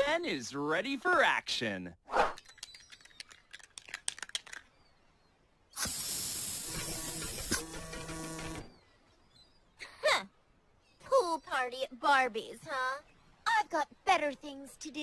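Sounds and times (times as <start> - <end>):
aerosol spray can hissing: 5.8 - 7.6.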